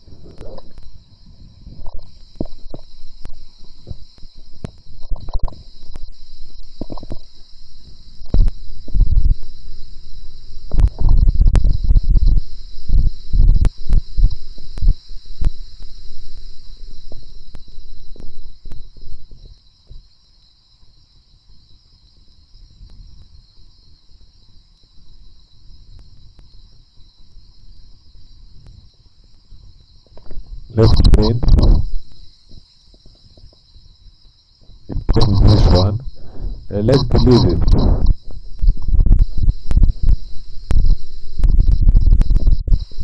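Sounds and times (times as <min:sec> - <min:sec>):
faint steady hiss: 0:00.0 - 0:43.0
low thuds on microphone: 0:08.2 - 0:09.5, 0:10.7 - 0:15.6, 0:30.2 - 0:32.1, 0:36.6 - 0:42.9.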